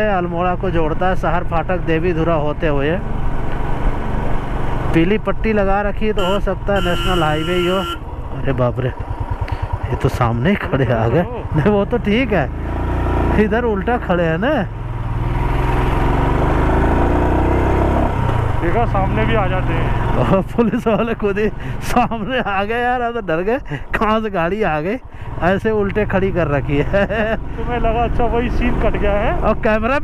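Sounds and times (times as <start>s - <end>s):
motorcycle engine running: 0.0s - 23.1s
wind and road rush: 0.0s - 30.0s.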